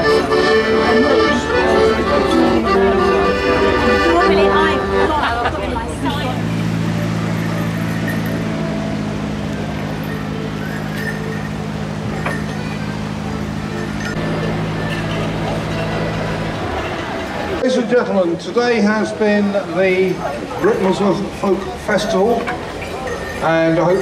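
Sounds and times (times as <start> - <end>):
diesel engine humming: 0.0 - 24.0
people's voices: 0.0 - 24.0.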